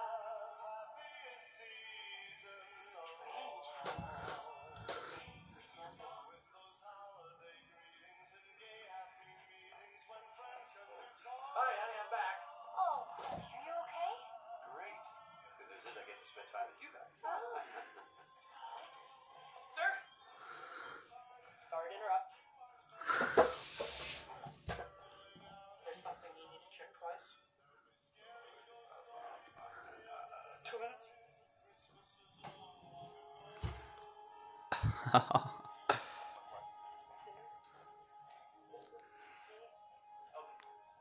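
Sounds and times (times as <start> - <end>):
background music: 0.0 - 41.0
dialogue: 2.7 - 7.5, 8.6 - 34.2, 34.8 - 41.0.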